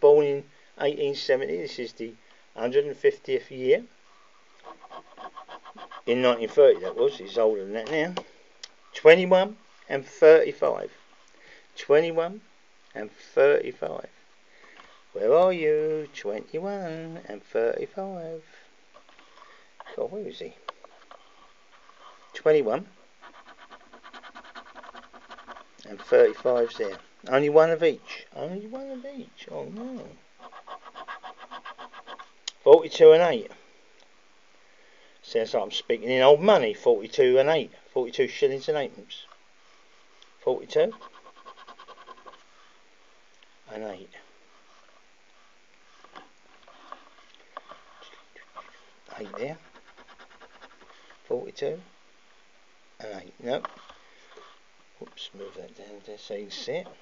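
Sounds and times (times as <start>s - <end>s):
scratch-off card being scratched: 4.6s - 7.1s, 23.2s - 27.0s, 30.4s - 32.3s, 40.8s - 42.5s, 47.7s - 50.9s.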